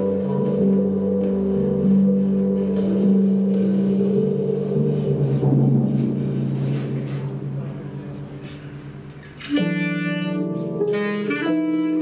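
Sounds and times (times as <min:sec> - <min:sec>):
drums: 0:00.0 - 0:10.2
bass clarinet low sustained notes: 0:00.0 - 0:12.0
piano: 0:00.0 - 0:12.0.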